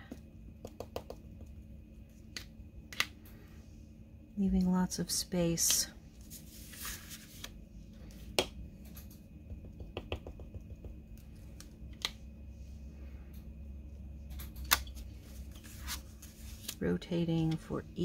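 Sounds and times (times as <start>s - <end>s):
steady low hum: 0.0s - 18.0s
stamp block tapping: 9.7s - 11.0s.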